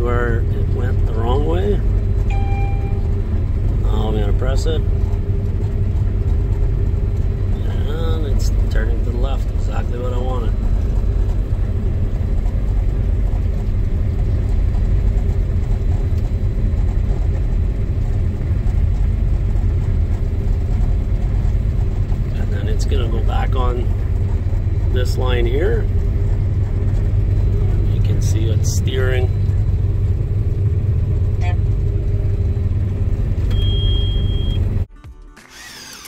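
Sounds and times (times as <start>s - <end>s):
combine harvester rumbling: 0.0s - 34.9s
steady hum: 0.0s - 34.9s.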